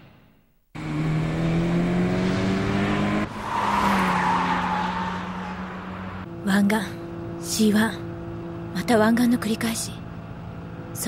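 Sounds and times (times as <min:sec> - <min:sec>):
sports car engines running: 0:00.8 - 0:11.0.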